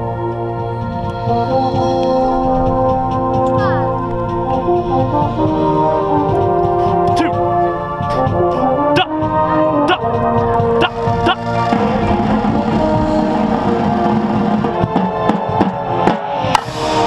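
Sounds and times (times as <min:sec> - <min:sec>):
brass chords: 0:00.0 - 0:17.0.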